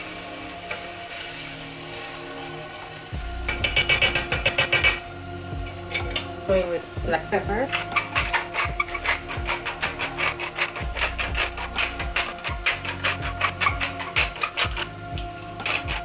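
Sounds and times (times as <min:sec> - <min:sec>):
background music: 0:00.0 - 0:16.0
pepper mill grinding: 0:07.6 - 0:16.0.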